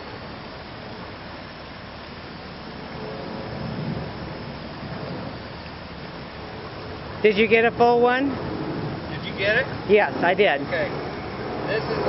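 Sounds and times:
stream rushing over rocks: 0.0 - 12.0.

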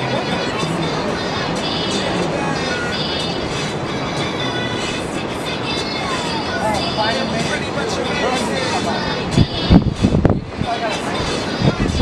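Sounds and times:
faint voices: 0.0 - 12.0
steady rushing noise: 0.0 - 12.0.

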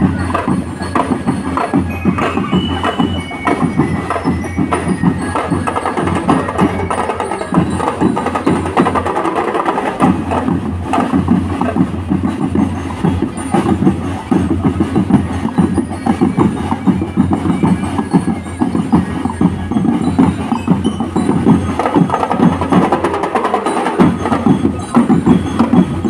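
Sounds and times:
marching percussion band drumming: 0.0 - 26.0.

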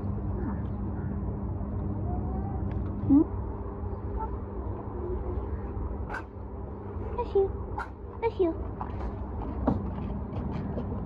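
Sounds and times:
constant low hum: 0.0 - 11.0
low street rumble: 0.0 - 11.0.

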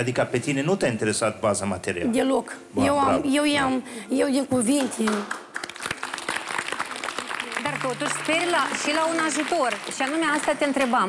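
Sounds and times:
audience applause: 5.0 - 11.0.

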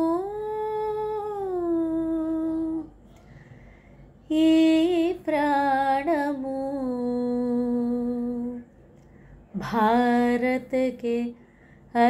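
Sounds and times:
woman singing long note: 0.0 - 2.9.

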